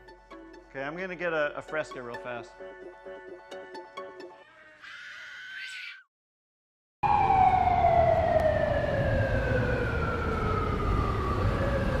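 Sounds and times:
long falling tone: 7.0 - 12.0.

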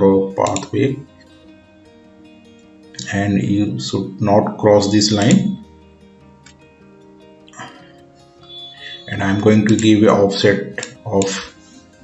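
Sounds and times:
soft background music chords: 0.0 - 12.0.

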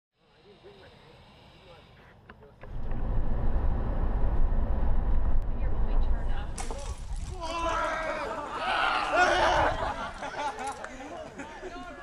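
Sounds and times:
bus engine and road noise: 2.6 - 6.6.

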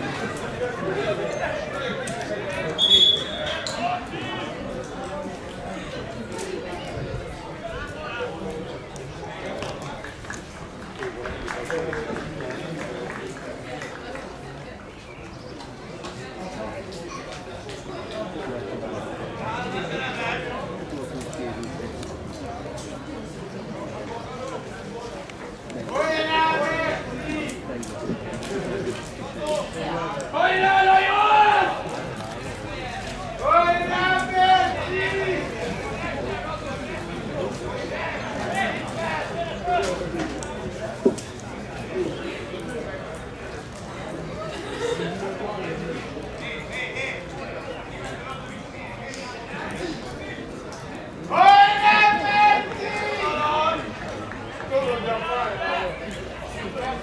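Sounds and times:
voices of players and onlookers: 0.0 - 57.0
referee's whistle blast: 2.8 - 3.6.

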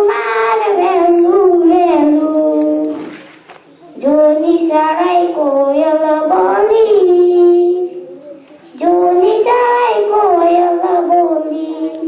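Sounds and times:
girl singing: 0.0 - 3.2, 3.8 - 12.0.

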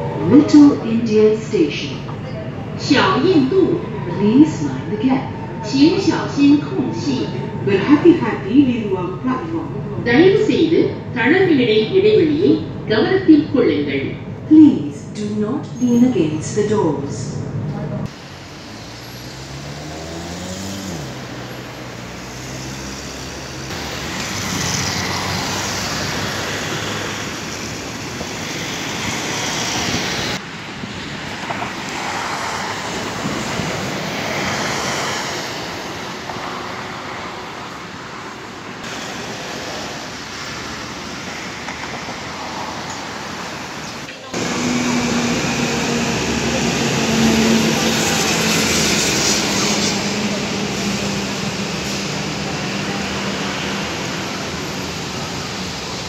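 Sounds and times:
road traffic: 0.0 - 56.0
engine rising in pitch: 18.1 - 30.4, 43.1 - 56.0.

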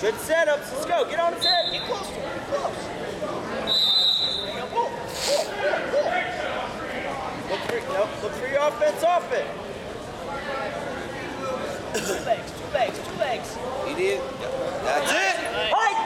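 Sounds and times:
people shouting in gymnasium: 15.0 - 16.0.

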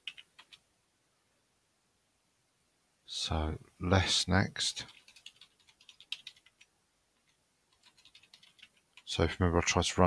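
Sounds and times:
computer keyboard typing: 0.0 - 0.6, 4.8 - 9.1.

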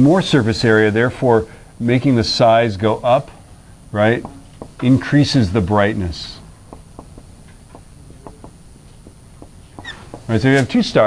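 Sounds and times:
marker writing on a whiteboard: 4.0 - 5.4, 6.3 - 10.6.

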